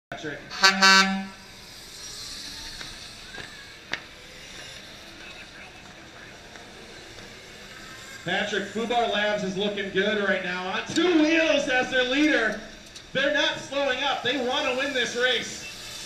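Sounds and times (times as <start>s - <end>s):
low background noise: 0.1s - 16.0s
horn note: 0.5s - 1.4s.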